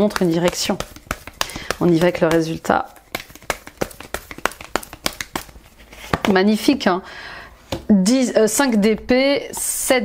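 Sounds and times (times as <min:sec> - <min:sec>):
cards being shuffled: 0:00.0 - 0:06.4.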